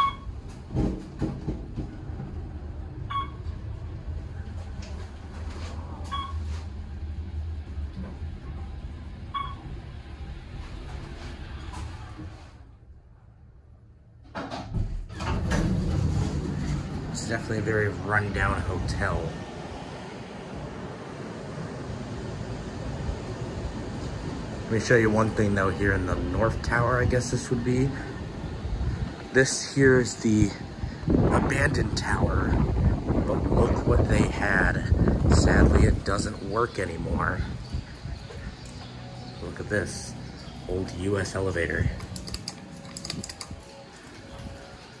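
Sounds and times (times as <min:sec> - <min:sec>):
elevator doors sliding open: 0:00.0 - 0:12.8, 0:14.2 - 0:45.0
wind rumble: 0:00.0 - 0:13.7, 0:15.2 - 0:45.0.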